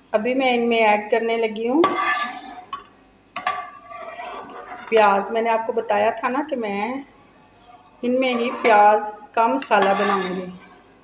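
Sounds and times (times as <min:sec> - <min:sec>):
spatula clinking on metal pan: 0:09.6 - 0:10.4.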